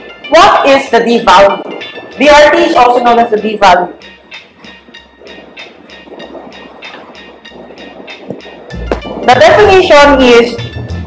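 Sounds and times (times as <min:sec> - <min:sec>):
steady rhythmic ticking: 0:00.0 - 0:11.0.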